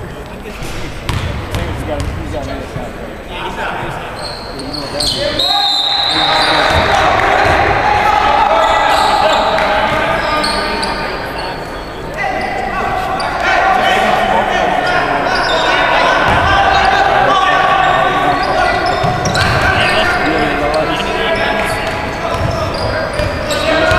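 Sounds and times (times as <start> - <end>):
ball bouncing on hardwood court: 1.1 - 2.2, 21.8 - 23.9
overlapping voices: 6.2 - 10.2.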